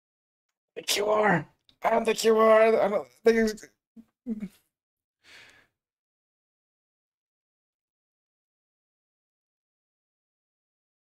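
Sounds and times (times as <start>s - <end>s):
person breathy sigh: 5.3s - 5.7s.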